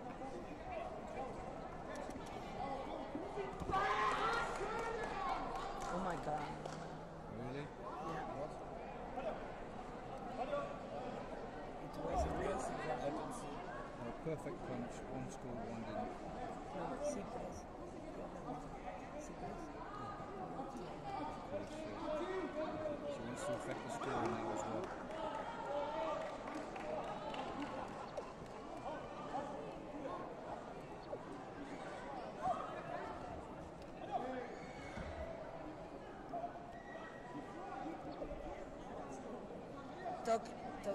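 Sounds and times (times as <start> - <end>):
people talking in a hall: 0.0 - 40.9.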